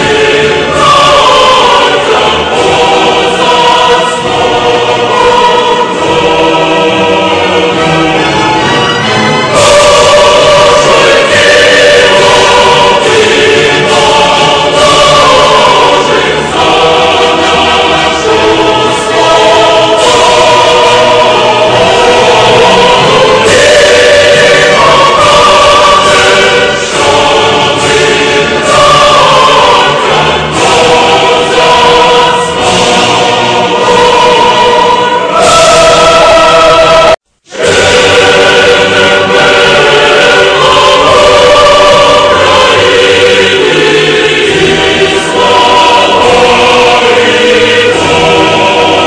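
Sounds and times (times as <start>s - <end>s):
choir singing held chords: 0.0s - 49.0s.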